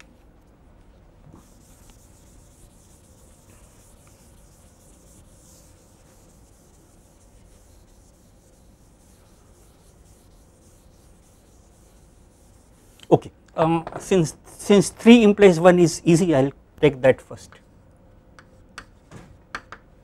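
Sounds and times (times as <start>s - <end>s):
duster wiping chalk off blackboard: 1.2s - 13.0s.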